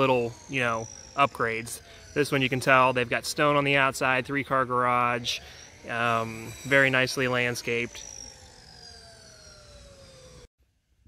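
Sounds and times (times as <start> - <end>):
faint distant siren: 0.0 - 10.5.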